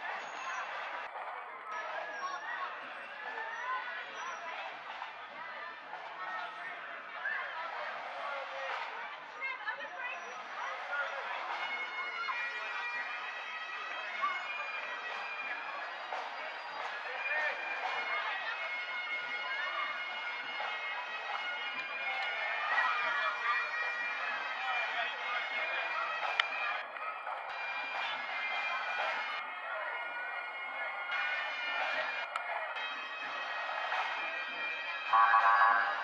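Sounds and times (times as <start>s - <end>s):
crowd voices: 0.0s - 36.0s
bagpipes playing: 17.0s - 24.8s, 32.8s - 36.0s.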